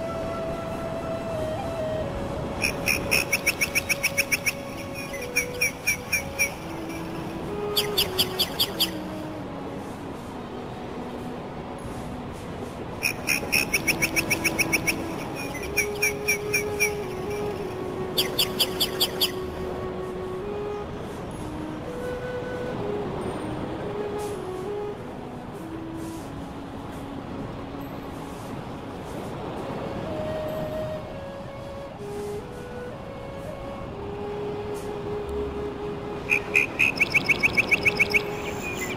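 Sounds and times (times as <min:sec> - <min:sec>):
small bird chirping: 0:18.2 - 0:19.4, 0:36.3 - 0:38.9.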